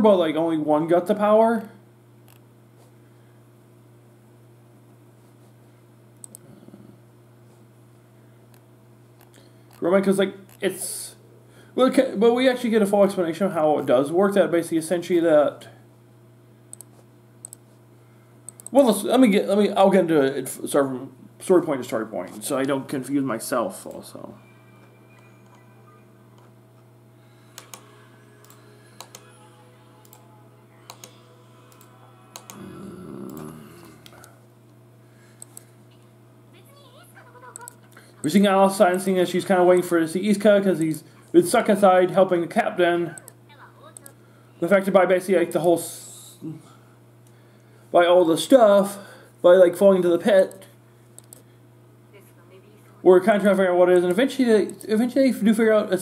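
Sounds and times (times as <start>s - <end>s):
steady low hum: 0.0s - 56.0s
computer keys clicking: 18.5s - 18.8s, 27.6s - 29.3s, 30.0s - 32.6s, 37.6s - 37.8s, 51.2s - 51.4s
sharp clicks: 18.5s - 18.8s, 27.6s - 29.2s, 51.2s - 51.4s.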